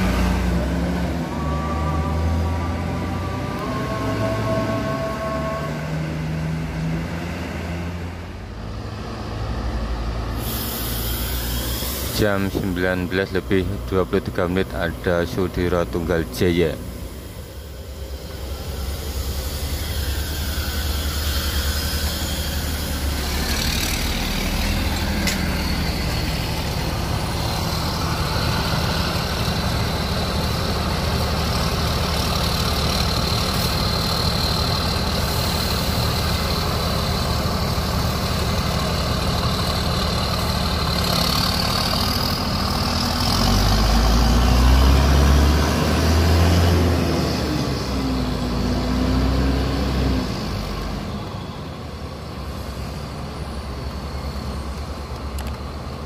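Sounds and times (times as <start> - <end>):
bus diesel engine running: 0.0 - 56.0.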